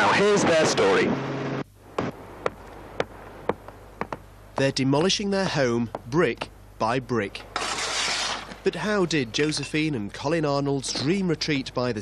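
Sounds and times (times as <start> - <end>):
steady hum: 0.0 - 12.0
hammer knocking on bricks: 2.0 - 5.1.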